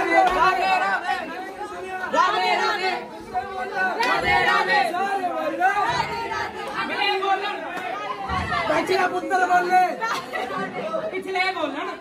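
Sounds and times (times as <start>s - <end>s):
crowd talking and calling out: 0.0s - 12.0s
people laughing: 8.0s - 11.8s.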